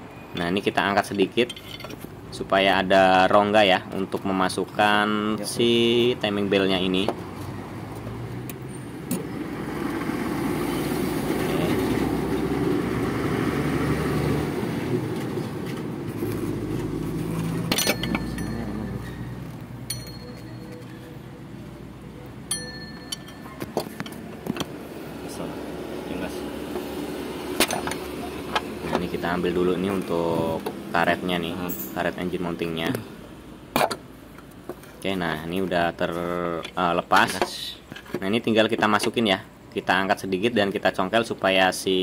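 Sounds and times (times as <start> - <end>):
metal tools clinking: 1.4 - 2.1, 17.5 - 21.1, 22.4 - 24.3, 31.7 - 32.0.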